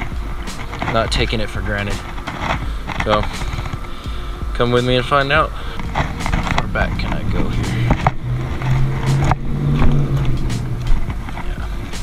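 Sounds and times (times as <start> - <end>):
steady low rumble: 0.0 - 12.0
man speaking: 3.0 - 3.4, 4.5 - 5.6, 6.6 - 8.0.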